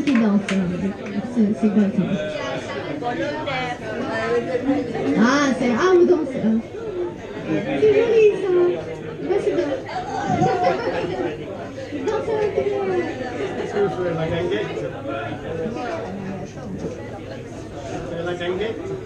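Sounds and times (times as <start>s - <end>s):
indistinct chatter of people: 0.0s - 19.0s.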